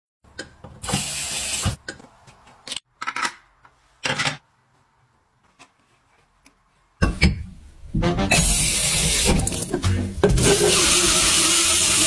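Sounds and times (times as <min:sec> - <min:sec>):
glass rinser spraying water: 0:08.3 - 0:09.8, 0:10.4 - 0:12.0.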